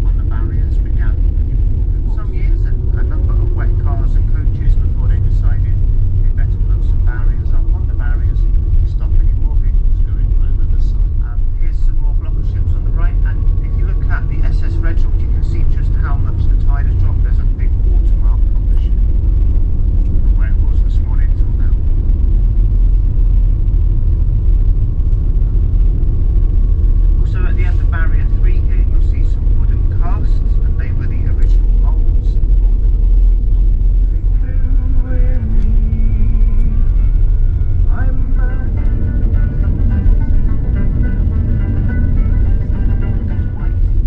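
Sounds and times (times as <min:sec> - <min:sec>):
indistinct voices talking: 0:00.0 - 0:22.4, 0:25.3 - 0:44.0
vehicle driving rumble: 0:00.0 - 0:44.0.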